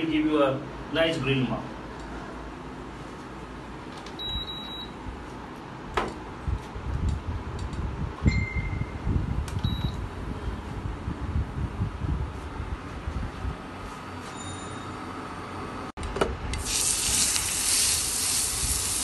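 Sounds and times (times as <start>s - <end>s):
short squeak: 14.2s - 15.1s.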